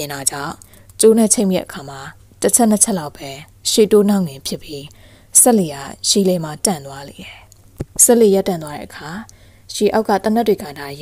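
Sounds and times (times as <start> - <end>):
woman narrating: 0.0 - 11.0.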